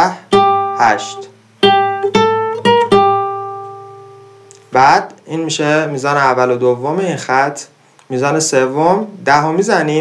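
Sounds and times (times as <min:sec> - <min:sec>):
nylon-string guitar plucked notes: 0:00.2 - 0:04.8.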